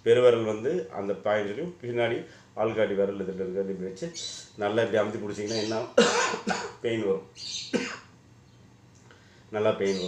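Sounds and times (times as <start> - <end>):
man talking: 0.0 - 7.3, 9.5 - 10.0
sharp coughs: 6.0 - 6.8, 7.7 - 8.1.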